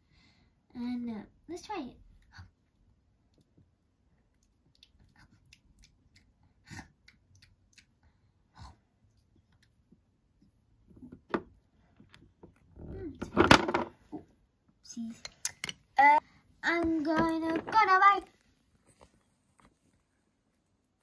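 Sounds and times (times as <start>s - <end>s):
clattering handling noise: 13.2s - 14.0s.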